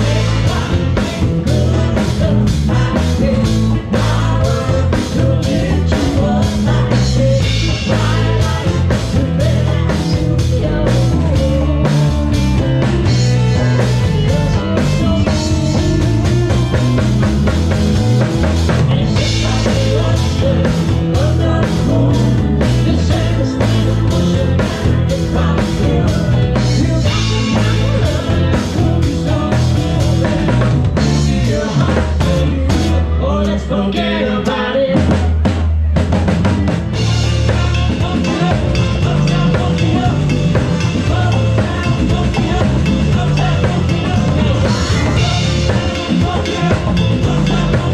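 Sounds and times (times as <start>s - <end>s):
drum kit beat: 0.0s - 33.7s, 34.4s - 47.9s
bass line: 0.0s - 47.9s
live latin band playing: 0.0s - 47.9s.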